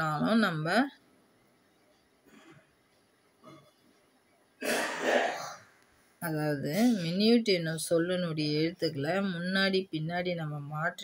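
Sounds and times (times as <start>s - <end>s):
man clearing his throat: 4.6s - 5.6s.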